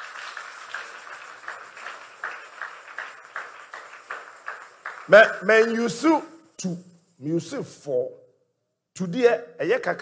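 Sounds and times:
audience clapping in rhythm: 0.0 - 6.3.

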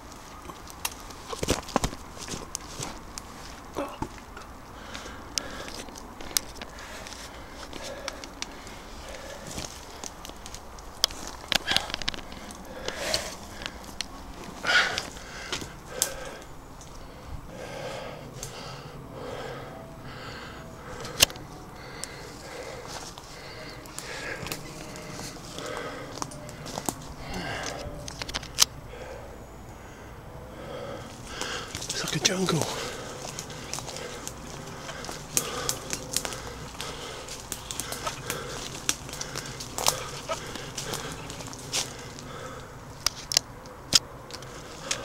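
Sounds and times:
twigs cracking and brushing: 0.0 - 17.3, 20.2 - 29.1, 30.8 - 45.0
bird calls: 3.7 - 43.8
footsteps crunching through leaves: 31.1 - 42.3.

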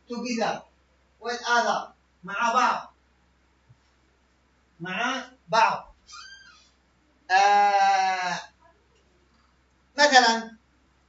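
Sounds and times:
person holding long aaah: 7.3 - 8.6.

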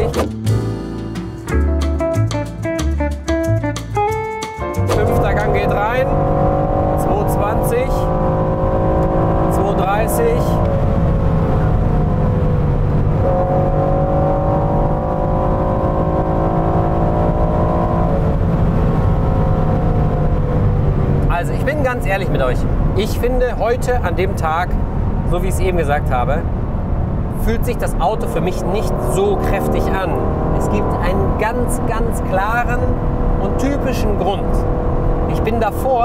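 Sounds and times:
road noise: 0.0 - 0.4, 4.7 - 36.0
background music with beat: 0.0 - 5.5
car engine running hard: 4.9 - 36.0.

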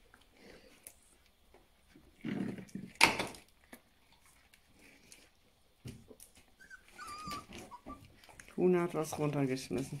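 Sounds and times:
small knocks and shuffling: 0.0 - 10.0
puppies whimpering and squeaking: 6.3 - 9.0.

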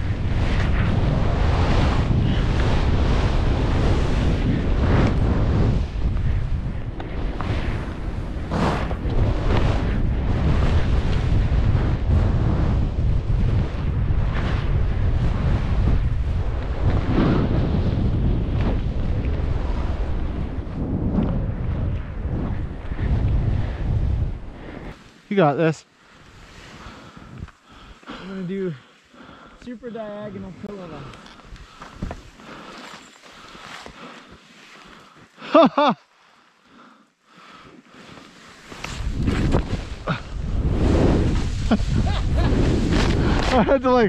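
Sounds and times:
wind buffeting microphone: 0.0 - 25.0, 38.7 - 44.0
skis hissing through snow: 26.1 - 28.7, 31.7 - 35.1, 37.9 - 43.8.

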